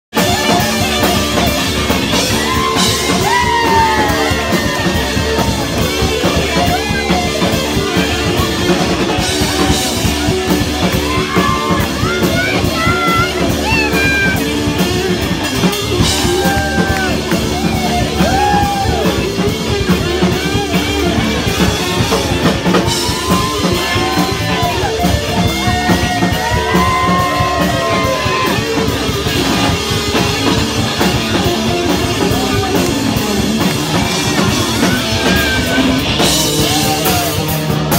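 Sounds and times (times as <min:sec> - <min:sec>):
drum kit: 0:00.1 - 0:37.9
electric guitar: 0:00.1 - 0:37.9
rock band playing live: 0:00.1 - 0:37.9.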